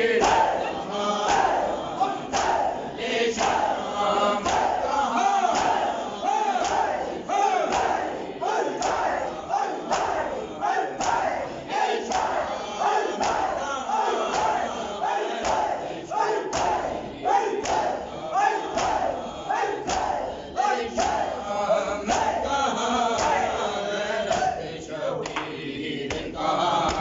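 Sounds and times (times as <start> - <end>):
men chanting: 0.0 - 27.0
hands slapping chests: 0.2 - 0.6, 1.2 - 1.7, 2.3 - 2.7, 3.3 - 3.8, 4.4 - 4.8, 5.5 - 7.0, 7.6 - 9.2, 9.8 - 11.4, 12.0 - 12.4, 13.2 - 13.6, 14.2 - 14.6, 15.4 - 15.8, 16.5 - 18.0, 18.7 - 19.2, 19.8 - 20.3, 20.9 - 21.3, 22.1 - 22.4, 23.2 - 23.4, 24.3 - 24.6, 25.2 - 27.0.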